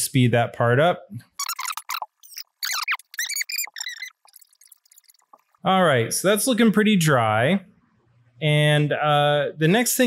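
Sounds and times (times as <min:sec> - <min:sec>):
sped-up squeaky voice chatter: 0:01.3 - 0:05.5.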